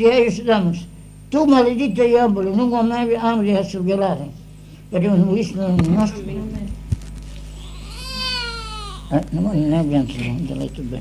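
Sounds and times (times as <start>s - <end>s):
steady low hum: 0.0s - 11.0s
infant crying: 7.4s - 9.2s.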